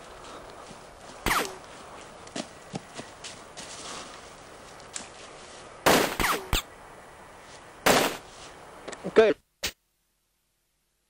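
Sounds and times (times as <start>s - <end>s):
gunshot-like bangs: 5.8s - 6.6s, 7.8s - 8.2s.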